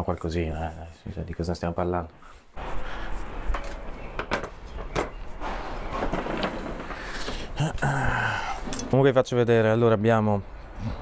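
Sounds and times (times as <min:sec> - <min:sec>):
person humming: 0:07.6 - 0:08.6.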